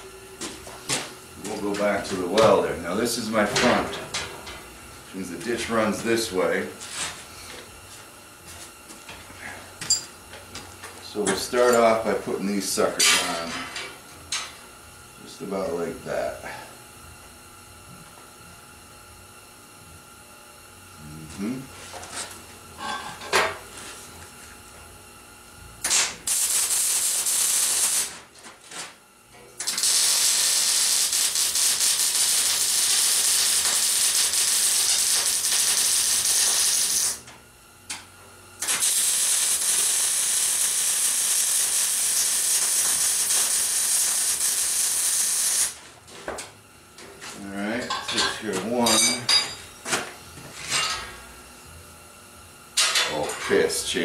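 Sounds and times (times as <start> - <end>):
welding arc crackling and hissing: 25.8 - 28.3, 29.6 - 37.3, 38.6 - 45.9.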